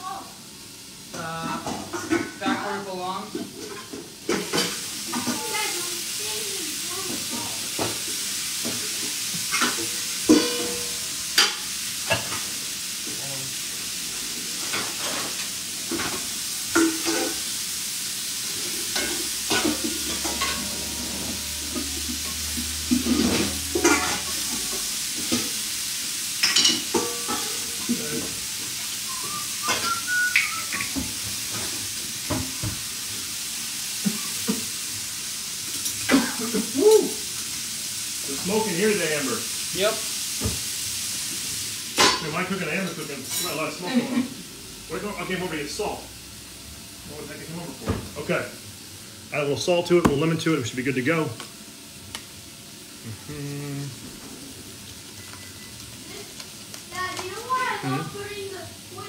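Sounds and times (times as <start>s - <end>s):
food sizzling in a hot pan: 0.0s - 59.0s
utensils and dishes clinking: 9.5s - 12.5s, 18.5s - 25.6s, 26.4s - 31.7s.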